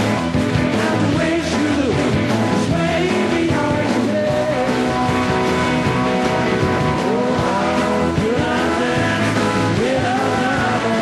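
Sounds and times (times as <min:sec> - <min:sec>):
live rock band playing loudly: 0:00.0 - 0:11.0
bending sliding guitar notes: 0:04.3 - 0:11.0.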